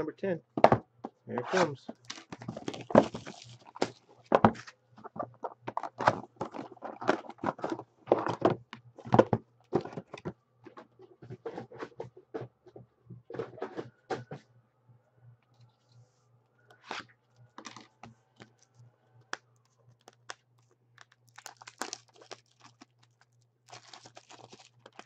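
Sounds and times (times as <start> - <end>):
cardboard and wrappers crinkling: 1.4 - 10.3, 16.8 - 25.0.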